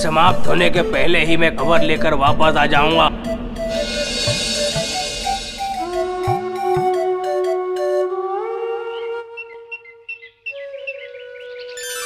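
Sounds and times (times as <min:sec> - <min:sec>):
theremin-like gliding tone: 0:00.7 - 0:09.9, 0:10.6 - 0:12.0
shimmering rise: 0:03.0 - 0:07.3, 0:11.8 - 0:12.0
twinkling chime notes: 0:11.8 - 0:12.0.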